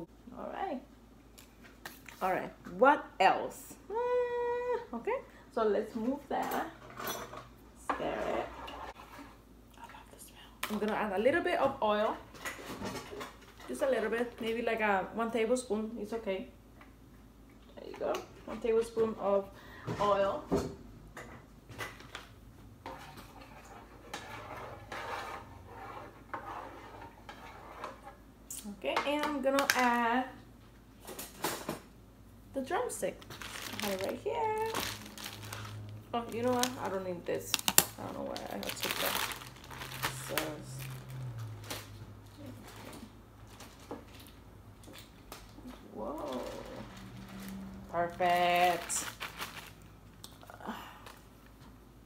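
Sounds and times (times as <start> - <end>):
low steady hum: 0.0 - 52.0
kitchen utensils clattering: 6.5 - 9.0
plastic bag rustling: 32.9 - 50.1.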